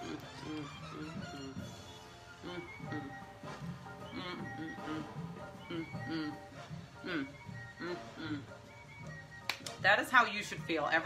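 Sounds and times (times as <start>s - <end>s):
woman humming while chewing: 0.0s - 9.2s
background music: 0.0s - 11.0s.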